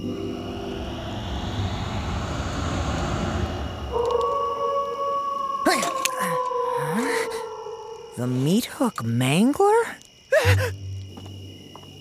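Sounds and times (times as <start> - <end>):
rushing wind-like noise: 0.0 - 5.4
long animal howl: 0.0 - 8.0.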